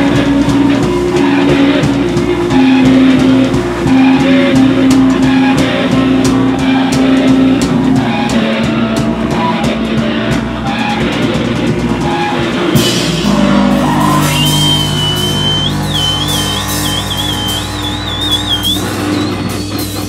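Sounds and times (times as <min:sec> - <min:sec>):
drum kit with cymbals: 0:00.0 - 0:20.0.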